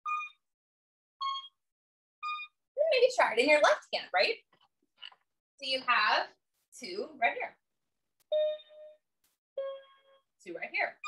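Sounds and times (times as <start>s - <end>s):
electronic keyboard notes: 2.2s - 2.6s, 8.3s - 10.3s.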